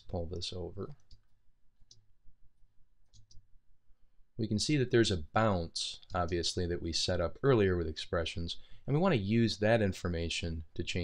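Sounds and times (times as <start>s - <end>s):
computer mouse clicks: 0.9s - 2.1s, 3.0s - 3.5s.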